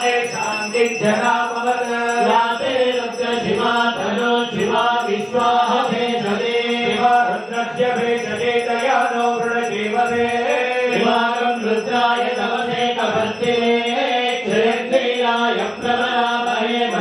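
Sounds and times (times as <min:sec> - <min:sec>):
mantras chanted: 0:00.0 - 0:17.0.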